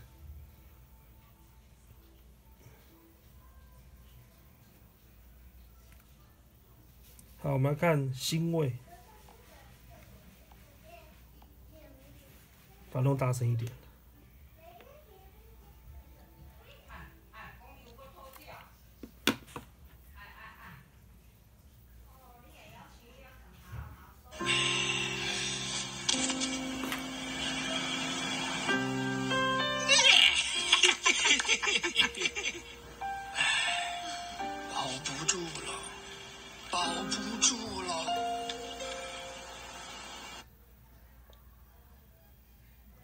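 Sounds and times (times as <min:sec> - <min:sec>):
film music through tablet speaker: 0:24.3 - 0:40.5.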